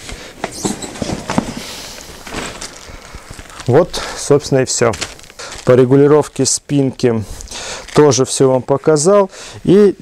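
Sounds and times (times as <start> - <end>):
fabric rustling: 0.0 - 6.0.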